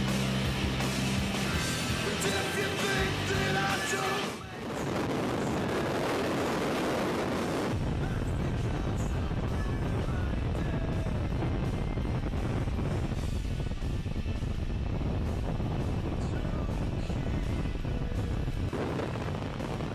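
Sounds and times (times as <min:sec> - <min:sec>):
rock music: 0:00.0 - 0:05.2, 0:07.7 - 0:19.9
wind buffeting microphone: 0:04.6 - 0:19.9.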